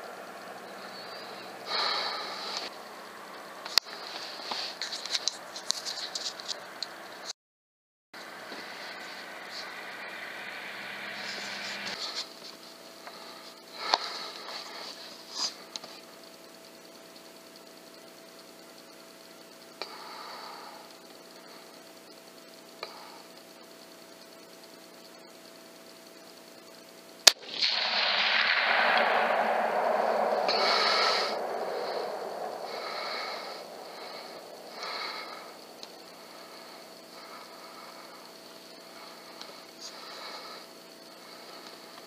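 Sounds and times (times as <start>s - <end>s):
loud rushing noise: 8.2s - 12.2s, 27.4s - 36.4s
rifle shot: 27.3s - 35.4s.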